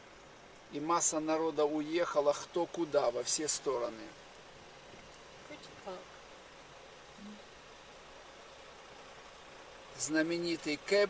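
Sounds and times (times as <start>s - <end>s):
car interior hiss: 0.0s - 11.0s.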